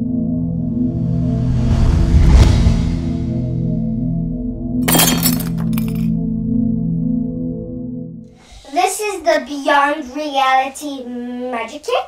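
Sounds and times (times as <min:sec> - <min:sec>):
crash with clinking: 0:04.8 - 0:06.1.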